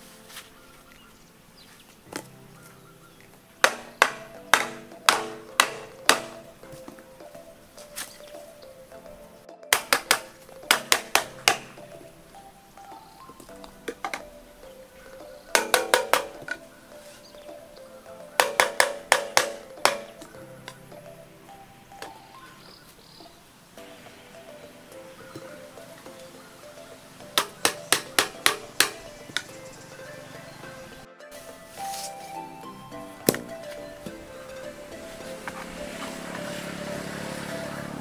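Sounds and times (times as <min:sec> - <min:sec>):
background music: 0:00.0 - 0:38.0
hammer tapping plastic pipe fitting: 0:03.6 - 0:06.5, 0:09.7 - 0:11.8, 0:15.5 - 0:16.6, 0:18.4 - 0:20.8.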